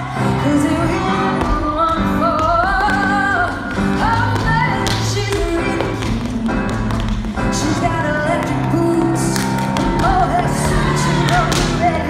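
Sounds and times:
pop song with woman singing: 0:00.0 - 0:12.0.

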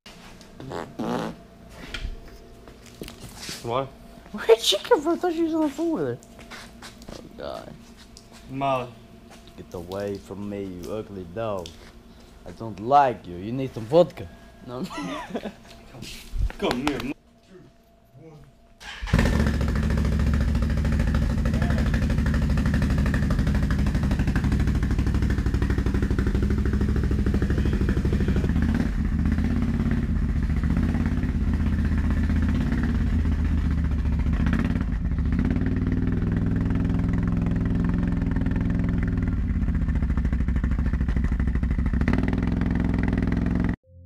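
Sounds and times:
atv engine running: 0:18.8 - 0:43.8.

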